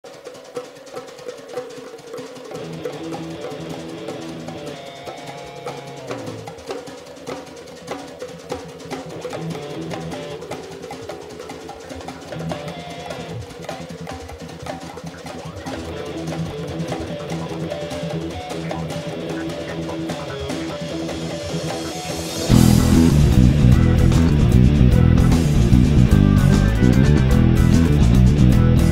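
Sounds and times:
progressive rock instrumental: 0:02.4 - 0:28.9
boosted bass guitar: 0:15.9 - 0:28.9.

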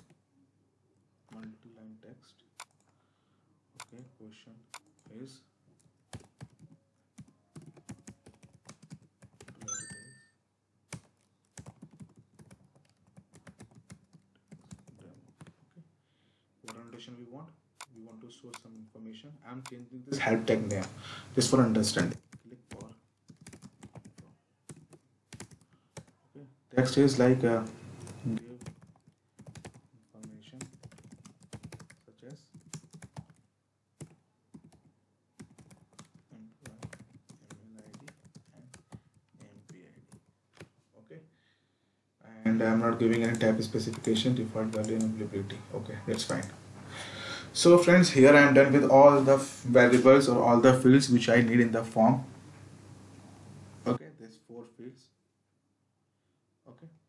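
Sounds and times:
typing on computer keyboard: 0:05.8 - 0:10.2, 0:10.9 - 0:15.6, 0:21.9 - 0:26.2, 0:27.6 - 0:40.7, 0:43.0 - 0:45.2, 0:46.1 - 0:46.6.

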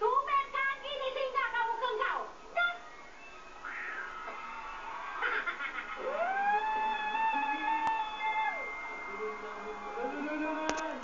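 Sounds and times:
television music: 0:00.0 - 0:11.0.

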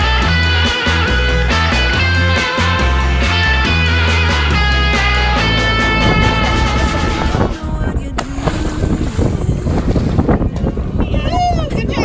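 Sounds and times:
wind buffeting microphone: 0:05.2 - 0:12.0
water lapping: 0:05.4 - 0:12.0
person splashing into water: 0:08.2 - 0:10.3.

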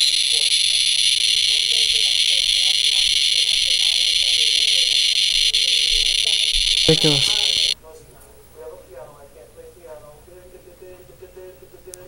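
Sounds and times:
radiation monitor clicking buzz: 0:00.0 - 0:07.8.

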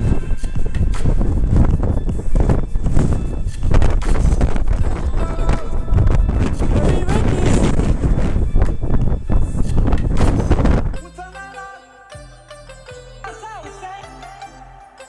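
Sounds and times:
wind on microphone: 0:00.0 - 0:11.0
music: 0:00.0 - 0:15.0
indistinct voices: 0:04.8 - 0:08.1.

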